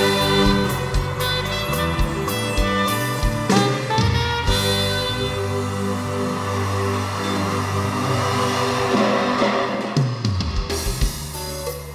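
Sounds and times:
live band music: 0.0 - 11.9.

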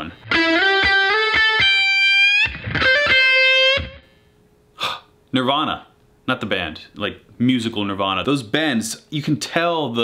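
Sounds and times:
electric guitar blues lick: 0.2 - 4.1.

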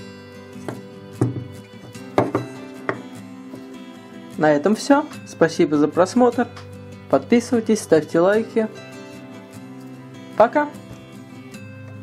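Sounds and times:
background music: 0.0 - 12.0
wooden box knocking on desk: 0.6 - 3.1.

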